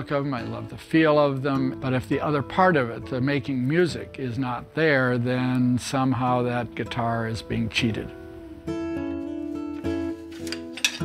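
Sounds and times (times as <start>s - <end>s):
acoustic guitar plucked notes: 0.0s - 11.0s.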